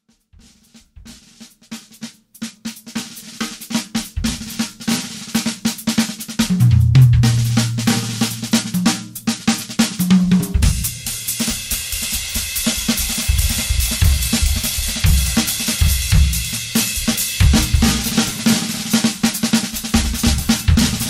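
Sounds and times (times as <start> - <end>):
snare and tom strokes: 0.4 - 21.0
bass drum hits: 6.5 - 9.0
cymbal ringing: 6.6 - 8.9.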